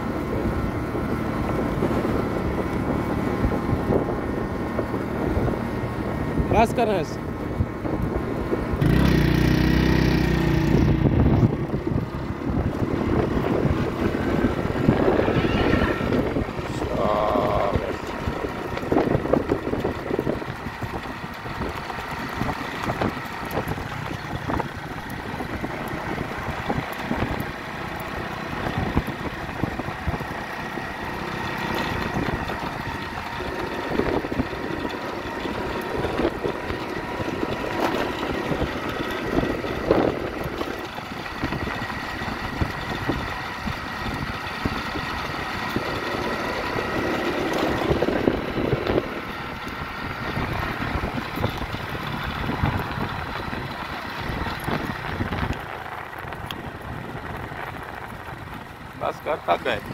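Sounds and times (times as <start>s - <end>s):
small engine running: 0.0s - 59.9s.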